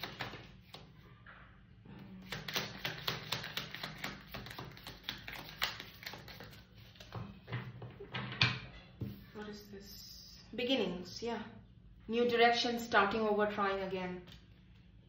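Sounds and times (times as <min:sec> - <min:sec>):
cards being shuffled: 0:02.2 - 0:07.2.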